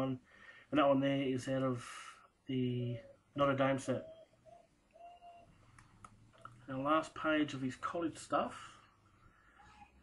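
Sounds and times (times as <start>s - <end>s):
bird cooing: 4.0s - 5.6s.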